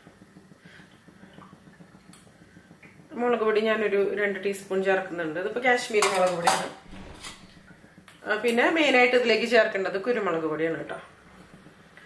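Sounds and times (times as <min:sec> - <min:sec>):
people talking: 0:03.1 - 0:06.8, 0:08.2 - 0:11.1.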